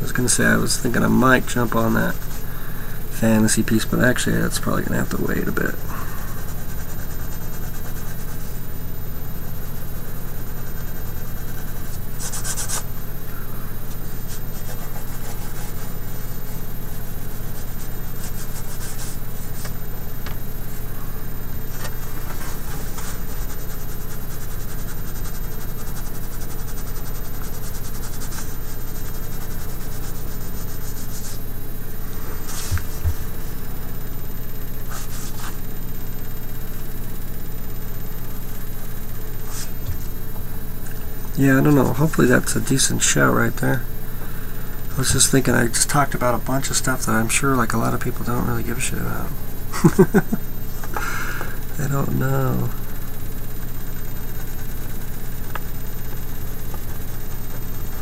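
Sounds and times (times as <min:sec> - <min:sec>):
steady low hum: 0:00.0 - 0:58.0
pencil scratching on paper: 0:05.4 - 0:08.7, 0:09.6 - 0:13.0, 0:13.8 - 0:19.8, 0:21.7 - 0:31.5, 0:53.8 - 0:58.0.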